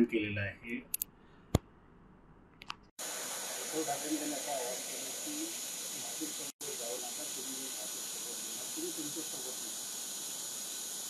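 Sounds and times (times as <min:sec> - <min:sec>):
recording hiss: 0:03.0 - 0:11.0.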